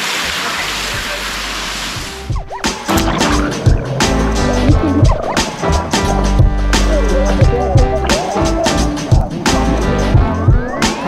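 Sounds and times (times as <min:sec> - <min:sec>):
sea water washing: 0:00.0 - 0:11.0
background music with a beat: 0:02.0 - 0:11.0
swooping sound effect: 0:02.6 - 0:09.4.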